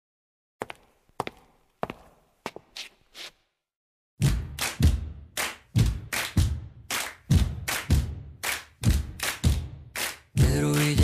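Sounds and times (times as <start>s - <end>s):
kick drum thumps: 4.2s - 9.8s
clap-like hits: 4.2s - 11.0s.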